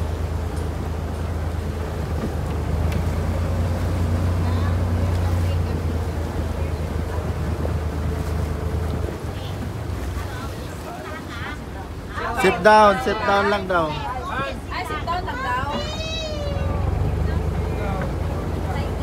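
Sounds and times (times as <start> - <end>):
boat engine droning: 0.0 - 19.0
water: 0.0 - 19.0.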